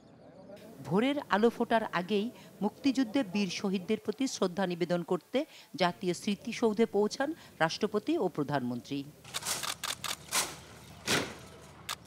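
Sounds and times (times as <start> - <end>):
woman speaking: 0.7 - 9.2.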